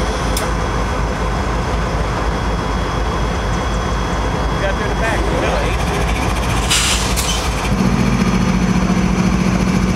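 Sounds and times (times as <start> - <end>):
locomotive diesel engine drone: 0.0 - 9.9.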